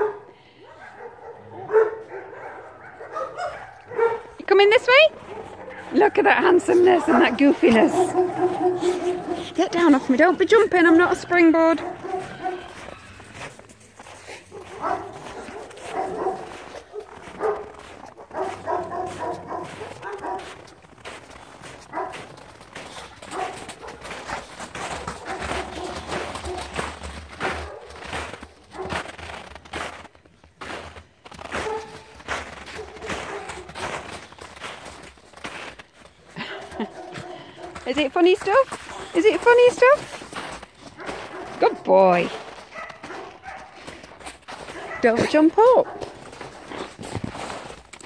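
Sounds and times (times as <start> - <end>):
paws scuffling in snow: 0.6 - 48.0
short dog vocalizations: 7.7 - 9.6.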